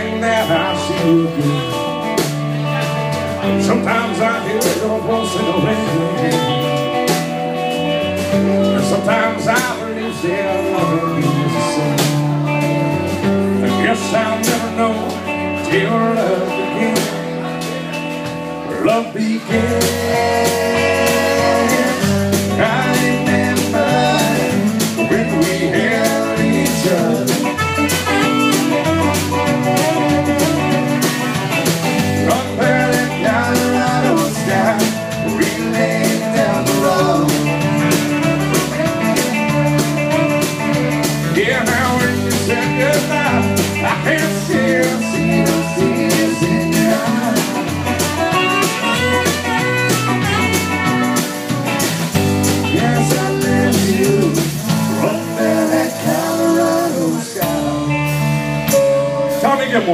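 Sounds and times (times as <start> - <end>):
drum kit: 0.0 - 59.9
electric bass: 0.0 - 59.9
electric guitar: 0.0 - 59.9
saxophone: 19.5 - 34.2, 37.2 - 42.2, 46.7 - 56.5, 57.4 - 59.7.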